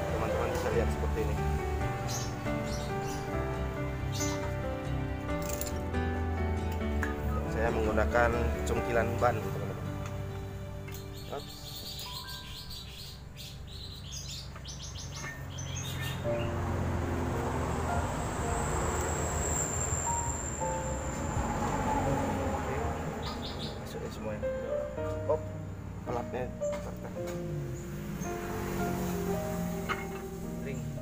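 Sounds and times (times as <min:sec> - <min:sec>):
background music: 0:00.0 - 0:14.1, 0:15.3 - 0:31.0
small birds chirping: 0:00.1 - 0:04.6, 0:10.0 - 0:16.7, 0:23.0 - 0:31.0.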